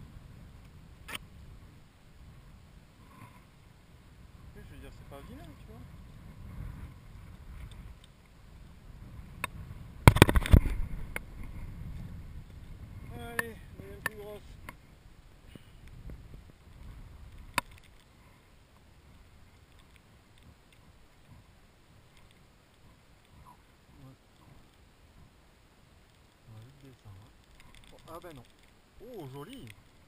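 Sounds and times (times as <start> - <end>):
low steady rumble: 0.0 - 30.0.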